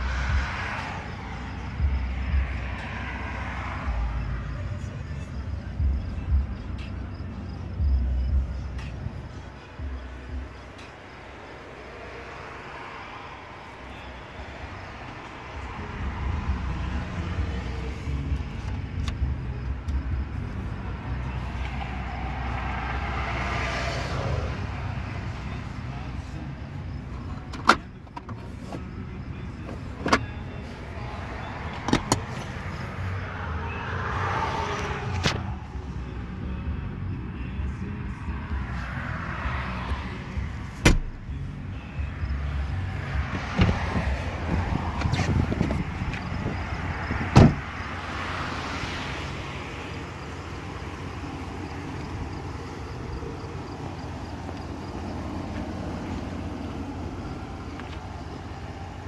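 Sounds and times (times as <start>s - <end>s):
low rumble inside truck cab: 0.0s - 59.0s.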